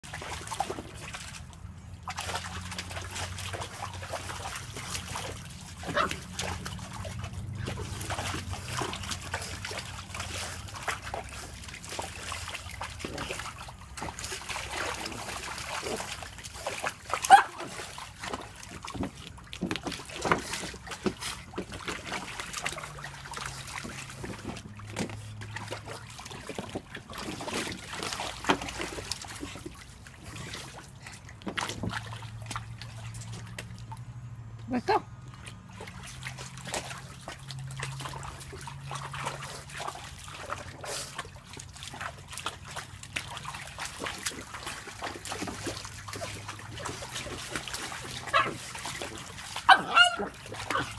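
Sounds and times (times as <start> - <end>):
dog splashing in water: 0.0 - 50.9.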